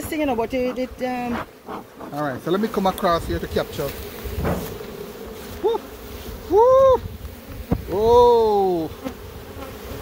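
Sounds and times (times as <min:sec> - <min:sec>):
honeybees buzzing: 0:00.0 - 0:10.0
louder bee buzz: 0:00.0 - 0:10.0.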